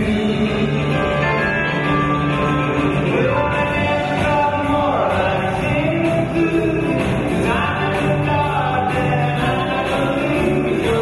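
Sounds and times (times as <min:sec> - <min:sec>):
man singing lead vocal: 0:00.0 - 0:02.2, 0:03.0 - 0:11.0
harmony voices: 0:00.0 - 0:11.0
live country rock band: 0:00.0 - 0:11.0.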